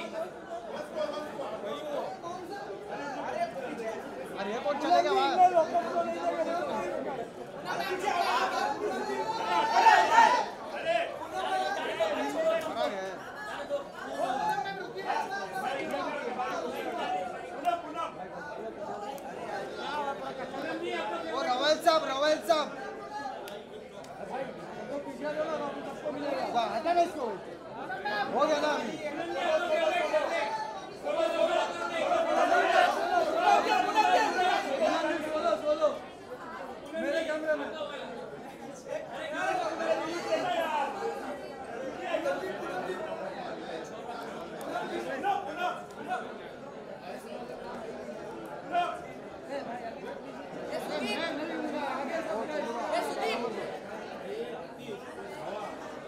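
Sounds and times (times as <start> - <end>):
crowd chatter: 0.0 - 56.0
people talking at once: 0.0 - 56.0.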